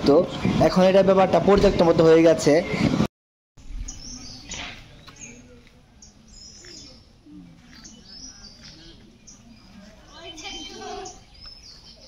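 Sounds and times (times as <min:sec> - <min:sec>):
small birds chirping: 0:03.6 - 0:12.0.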